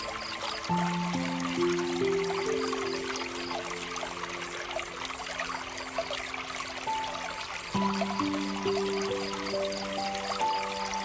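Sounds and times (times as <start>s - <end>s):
soft background music: 0.0s - 11.0s
water trickling from fountain: 0.0s - 11.0s.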